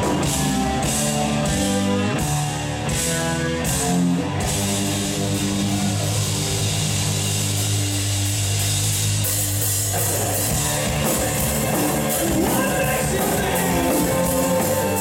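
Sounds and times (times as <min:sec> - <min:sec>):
rock band playing loud: 0:00.0 - 0:15.0.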